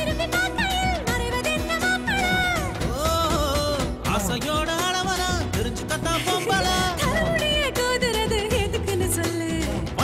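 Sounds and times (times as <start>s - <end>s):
high sung vocal line: 5.4s - 8.0s.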